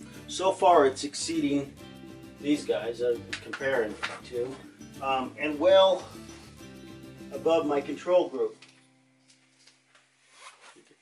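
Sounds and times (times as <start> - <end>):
soft rustles of movement: 8.6 - 11.0.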